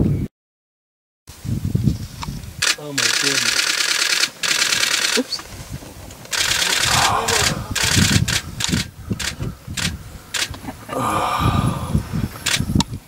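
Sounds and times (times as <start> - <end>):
camera shutters clicking: 2.6 - 5.5, 6.2 - 10.6, 12.4 - 12.7
low voices: 6.3 - 9.8, 10.4 - 12.6.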